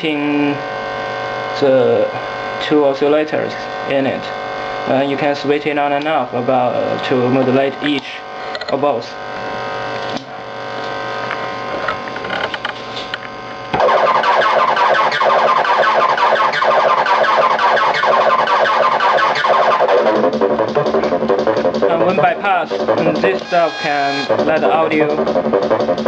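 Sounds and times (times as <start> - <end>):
electronic synth buzzing tone: 0.1 - 5.2, 13.6 - 26.0.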